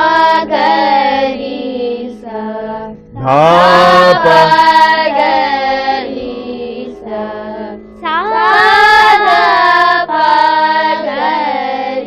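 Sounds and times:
steady low drone: 0.0s - 8.4s
child singing long held note: 0.0s - 12.0s.

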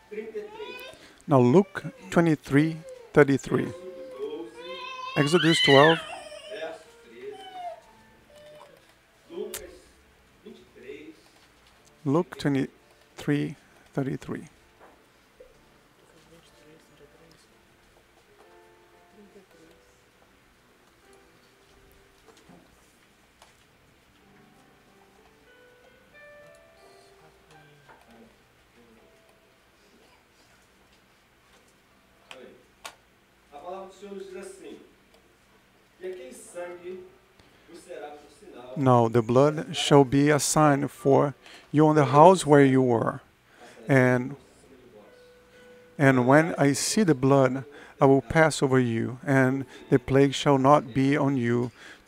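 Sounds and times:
man speaking: 0.5s - 7.4s, 12.0s - 14.5s, 38.8s - 43.2s, 43.9s - 44.4s, 46.0s - 51.7s.

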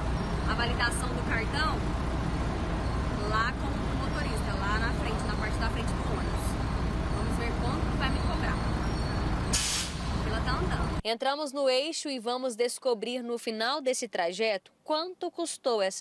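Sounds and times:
buses rumbling: 0.0s - 11.0s
air brakes hissing: 9.5s - 10.2s.

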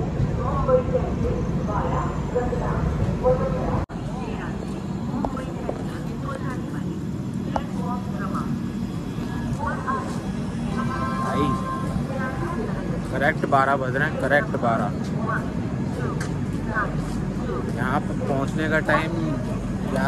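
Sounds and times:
people talking: 0.0s - 20.0s
train rolling low rumble: 0.0s - 20.0s.

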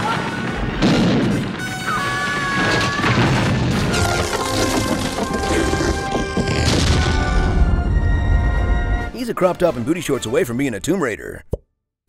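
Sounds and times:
crumbling rock and falling debris: 2.6s - 7.5s.

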